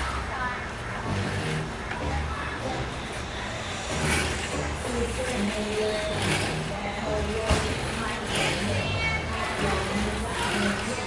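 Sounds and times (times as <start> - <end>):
distant indistinct talking: 0.0 - 11.0.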